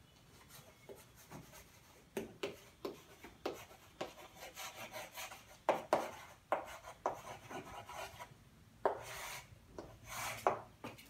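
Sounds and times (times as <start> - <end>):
chalk scraping on chalkboard: 0.4 - 10.7.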